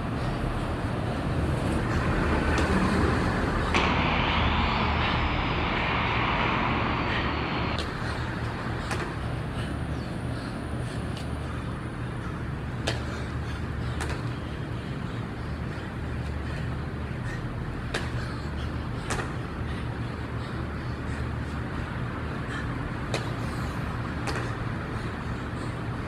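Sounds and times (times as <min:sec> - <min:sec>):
low rumble: 0:02.0 - 0:08.8.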